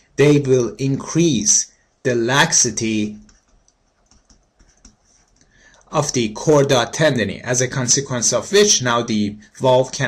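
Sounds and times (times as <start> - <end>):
stylus tapping on pen tablet: 3.2 - 5.4.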